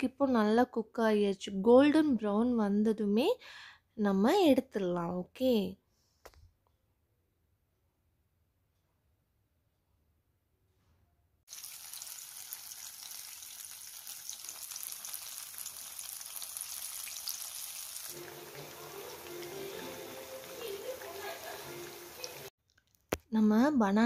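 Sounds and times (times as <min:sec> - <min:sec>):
fritters sizzling in hot oil: 0:11.5 - 0:22.5.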